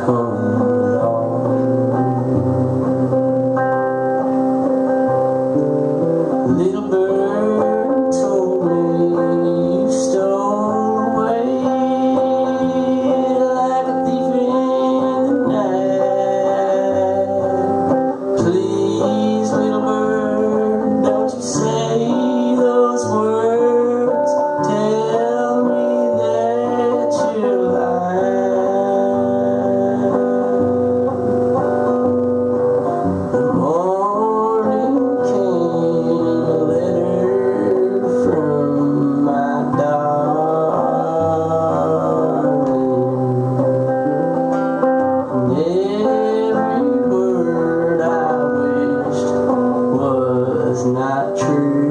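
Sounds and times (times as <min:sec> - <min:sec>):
acoustic guitar strummed: 0:00.0 - 0:51.9
man singing: 0:00.0 - 0:51.9.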